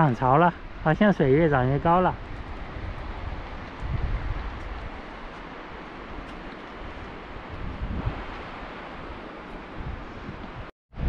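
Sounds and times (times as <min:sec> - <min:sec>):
rushing hiss of wind: 0:00.0 - 0:11.0
wind buffeting microphone: 0:00.0 - 0:11.0.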